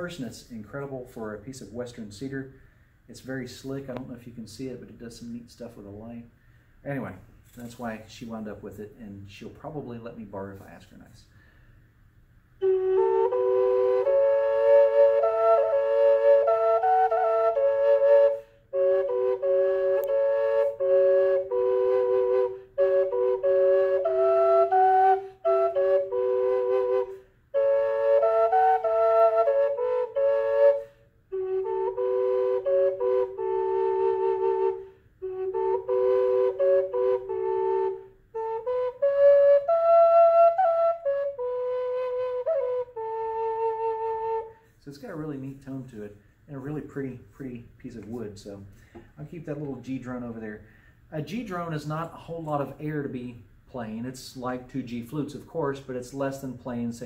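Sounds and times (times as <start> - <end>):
drone flute playing slow melody: 12.6 - 44.6.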